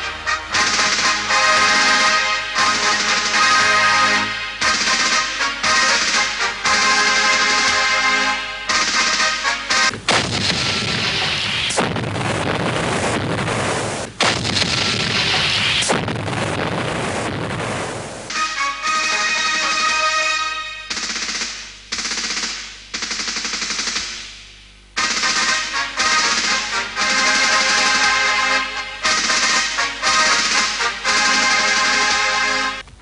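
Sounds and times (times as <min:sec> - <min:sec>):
background music: 0:00.0 - 0:13.1, 0:18.3 - 0:21.6, 0:24.9 - 0:32.9
loud gunfire: 0:00.5 - 0:32.8.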